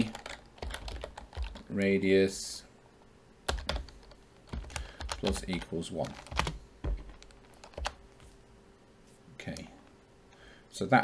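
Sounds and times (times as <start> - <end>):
computer keyboard keystrokes: 0.0 - 1.6, 3.5 - 8.0.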